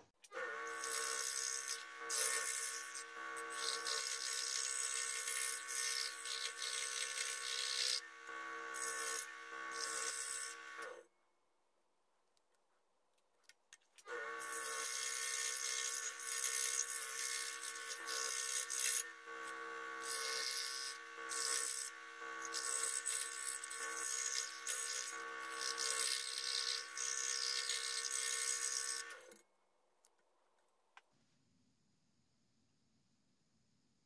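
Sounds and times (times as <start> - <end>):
electric scroll saw cutting wood: 0.3 - 11.0, 14.1 - 29.4.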